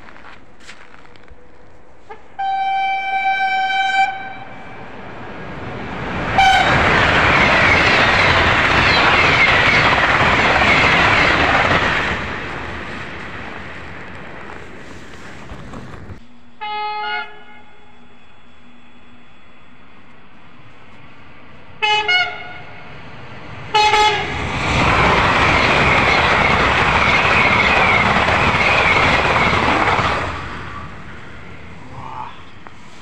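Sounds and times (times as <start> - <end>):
train passing at speed: 1.4 - 16.2, 17.2 - 33.0
train horn blasts: 2.0 - 4.9, 6.4 - 6.9, 16.2 - 19.2, 21.8 - 22.9, 23.7 - 24.4.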